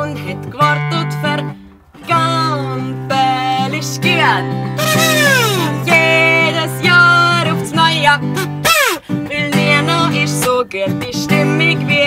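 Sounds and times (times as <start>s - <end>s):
woman singing: 0.0s - 4.5s, 5.1s - 8.4s, 9.2s - 12.0s
acoustic guitar: 0.0s - 12.0s.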